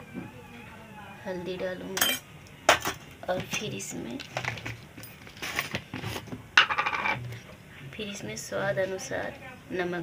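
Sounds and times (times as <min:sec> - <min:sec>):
utensils clattering: 0:02.0 - 0:07.2.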